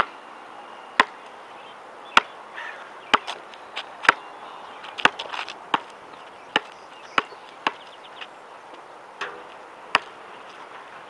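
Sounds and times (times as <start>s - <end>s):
basketball bouncing on hard court: 6.5s - 7.8s, 9.3s - 10.2s.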